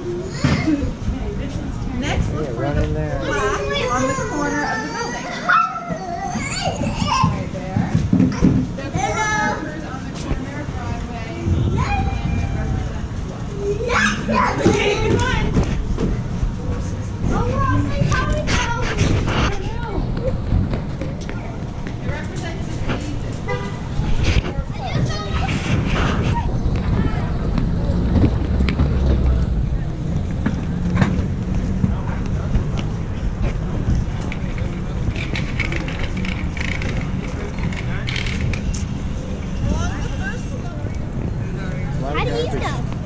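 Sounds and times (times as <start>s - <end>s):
children calling and squealing: 0.0s - 1.6s, 3.1s - 29.4s, 33.5s - 43.0s
voices: 0.0s - 43.0s
child crying out: 3.3s - 7.1s
wind rumble on microphone: 15.0s - 41.6s.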